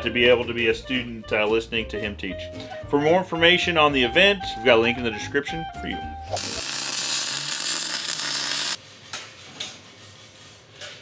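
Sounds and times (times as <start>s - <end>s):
welder arc crackling: 6.4s - 8.8s.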